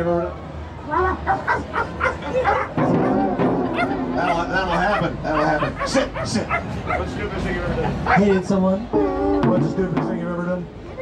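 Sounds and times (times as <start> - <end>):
dog yapping: 1.1 - 7.1.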